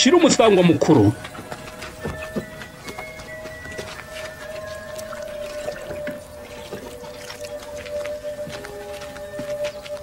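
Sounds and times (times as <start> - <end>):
soft film score music: 0.0 - 10.0
water splashing in a stone jar: 3.8 - 8.2.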